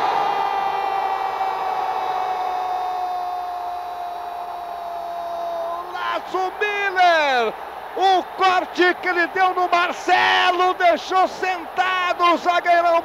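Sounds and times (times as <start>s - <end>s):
stadium crowd noise: 0.0s - 13.0s.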